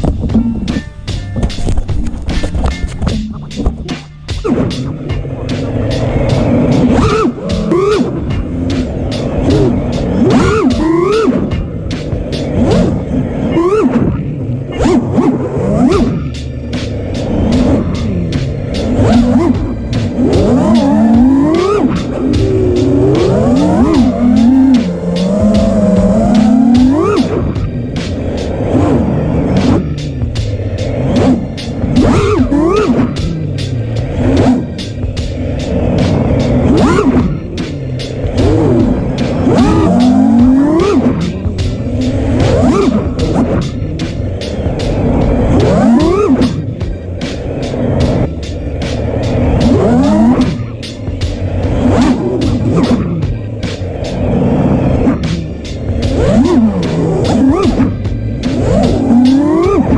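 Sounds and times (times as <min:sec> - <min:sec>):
background music with drum beat: 0:00.0 - 0:14.2, 0:14.8 - 0:59.9
drone motors whining: 0:00.0 - 0:59.9.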